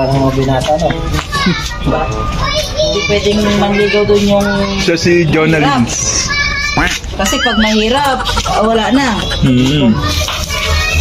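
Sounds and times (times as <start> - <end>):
children chattering and playing: 0.0 - 11.0.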